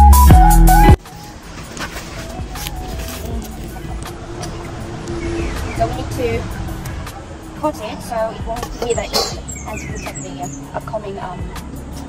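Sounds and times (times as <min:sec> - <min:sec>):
rustles: 0:01.0 - 0:07.6
low outdoor rumble: 0:01.3 - 0:11.4.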